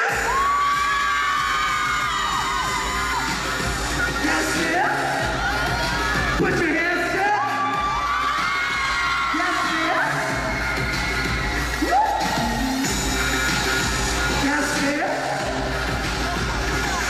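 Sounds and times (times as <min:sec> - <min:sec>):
audience cheering and screaming: 0:00.0 - 0:17.0
pop music over sound system: 0:00.0 - 0:17.0.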